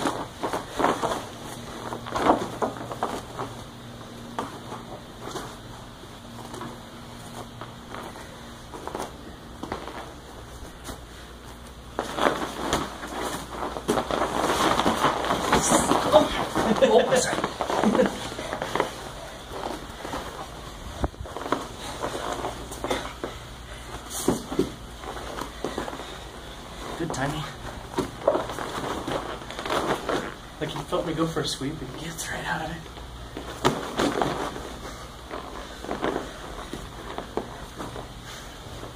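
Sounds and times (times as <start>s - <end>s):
bodies knocking against mats: 0.0s - 26.8s, 27.6s - 30.5s, 33.3s - 38.9s
fabric rustling: 0.0s - 31.4s, 32.8s - 38.9s.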